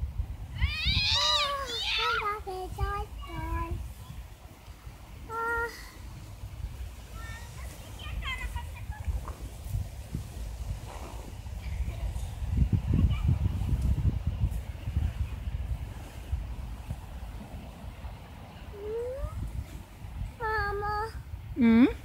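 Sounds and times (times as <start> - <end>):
wind buffeting microphone: 0.0 - 22.0
child's high vocal sounds: 0.6 - 3.8, 5.3 - 6.0, 18.8 - 19.4.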